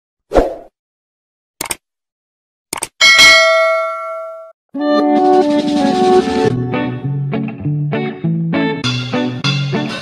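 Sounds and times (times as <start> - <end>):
bright bell ding: 3.0 - 4.5.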